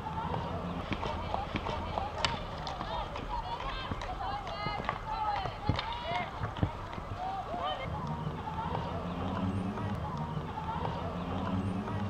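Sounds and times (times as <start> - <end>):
players shouting: 0.0 - 12.0
hockey sticks hitting ball: 0.3 - 8.9.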